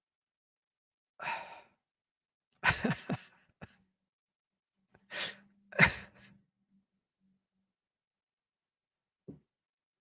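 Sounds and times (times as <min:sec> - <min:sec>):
man laughing: 0:02.6 - 0:03.8, 0:05.8 - 0:06.3.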